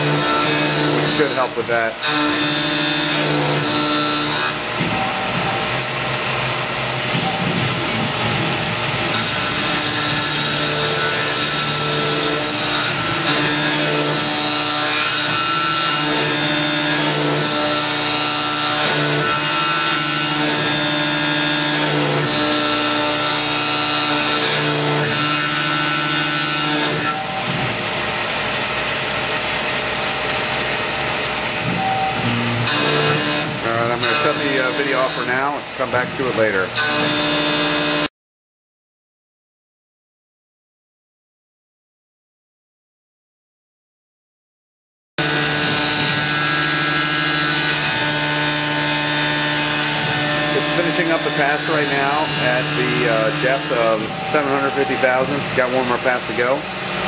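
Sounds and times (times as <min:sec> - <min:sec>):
pitched machine tones: 0:00.0 - 0:17.6, 0:26.0 - 0:37.9, 0:49.9 - 0:57.0
milling machine cutting metal: 0:00.0 - 0:38.1, 0:45.2 - 0:57.0
coolant spraying: 0:04.2 - 0:10.0, 0:27.2 - 0:36.8, 0:50.5 - 0:57.0.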